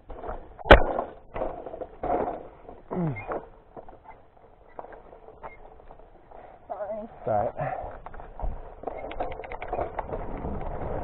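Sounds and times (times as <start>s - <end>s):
bike rattling on rough trail: 0.0s - 11.0s.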